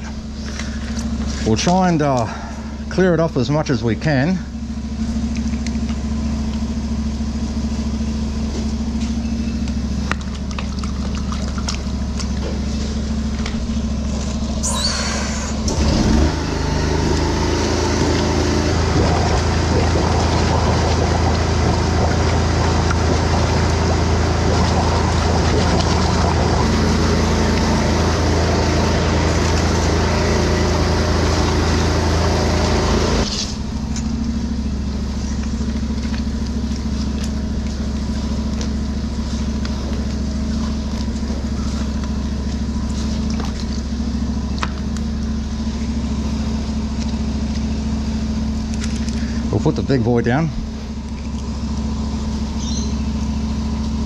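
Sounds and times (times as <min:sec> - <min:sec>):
engine running steadily: 0:00.0 - 0:54.0.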